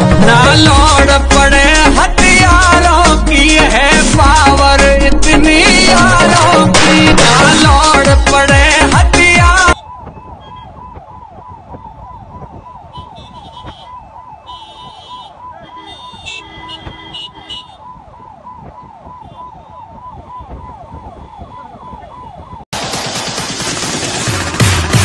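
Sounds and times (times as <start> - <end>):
loud music: 0.0 - 9.8, 22.8 - 25.0
slow traffic rumble: 8.7 - 22.6
siren in falling sweeps: 9.3 - 22.7
car horn honks: 12.9 - 17.9.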